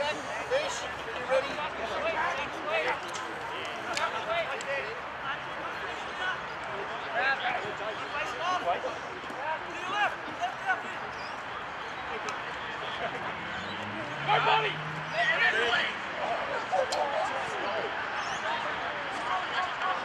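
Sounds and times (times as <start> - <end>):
distant players shouting: 0.0 - 20.0
outdoor background noise: 0.0 - 20.0.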